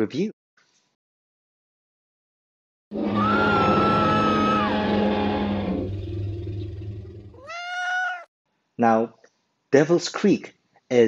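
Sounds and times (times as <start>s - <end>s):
short rising pitched cry: 3.0s - 5.9s, 7.4s - 8.3s.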